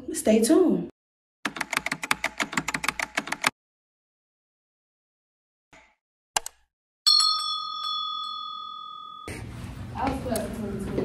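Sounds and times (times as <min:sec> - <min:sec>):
bell ding: 0:07.1 - 0:09.4.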